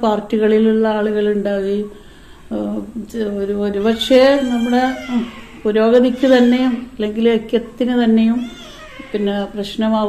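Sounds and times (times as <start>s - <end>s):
woman speaking: 0.0s - 10.0s.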